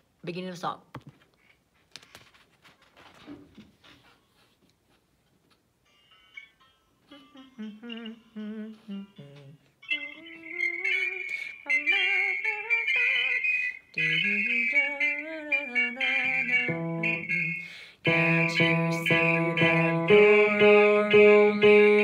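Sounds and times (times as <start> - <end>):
faint handling noise: 0.9 - 5.7
person humming with vibrato: 7.0 - 13.4, 14.0 - 22.0.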